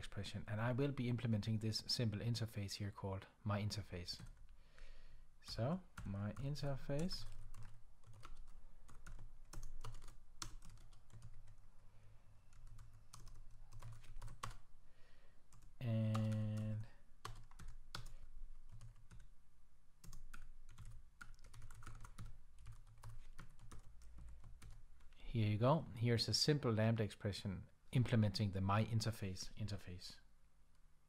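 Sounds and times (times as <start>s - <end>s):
computer keyboard typing: 4.2s - 4.4s, 5.5s - 11.6s, 12.5s - 14.6s, 15.5s - 19.3s, 20.0s - 24.8s.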